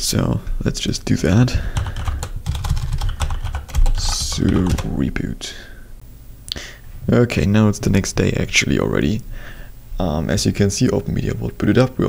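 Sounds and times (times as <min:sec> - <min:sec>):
computer keyboard typing: 0:01.7 - 0:04.9.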